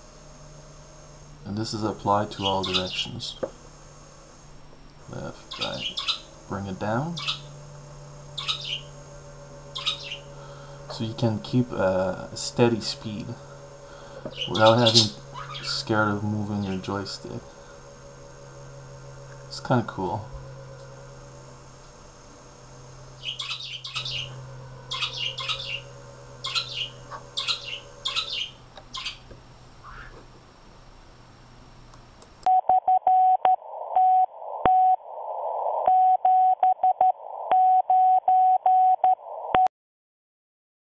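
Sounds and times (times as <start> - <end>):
low steady hum: 0.0 - 33.4
radio static: 1.4 - 3.6, 4.4 - 7.7, 9.8 - 22.4.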